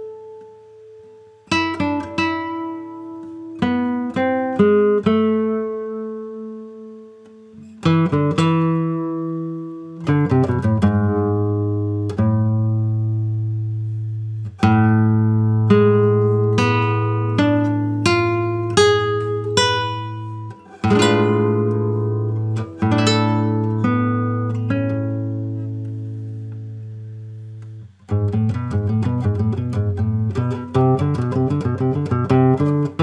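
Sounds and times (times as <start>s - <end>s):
fingerstyle classical guitar: 0.0s - 33.0s.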